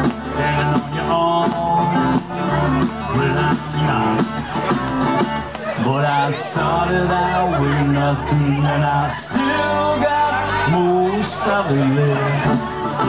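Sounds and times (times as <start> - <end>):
country band playing: 0.0 - 13.0.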